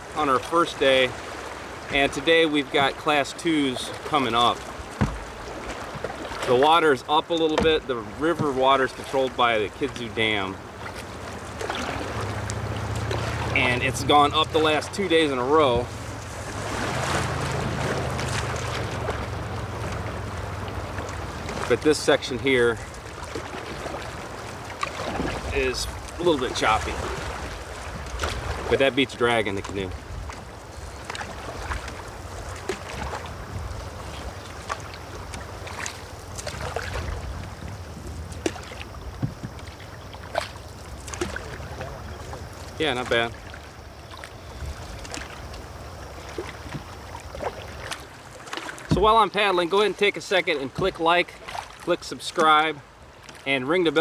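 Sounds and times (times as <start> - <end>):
river water splashing: 0.0 - 54.0
wind rumbling on microphone: 10.6 - 21.8, 29.6 - 42.8, 43.8 - 48.0
wind rumble on microphone: 29.7 - 35.6, 36.2 - 40.0, 44.5 - 46.0.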